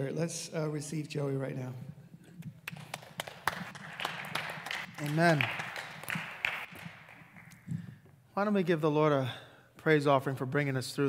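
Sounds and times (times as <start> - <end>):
scattered applause: 2.6 - 7.7.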